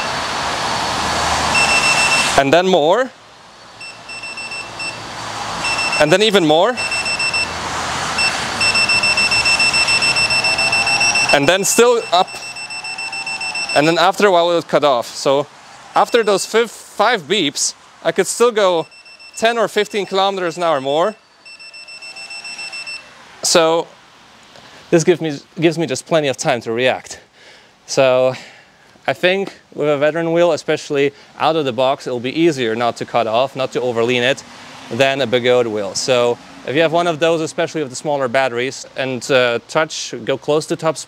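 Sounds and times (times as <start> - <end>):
high-pitched alarm beeping: 1.5 - 2.4, 3.8 - 7.6, 8.2 - 14.2, 16.0 - 16.6, 18.7 - 23.1.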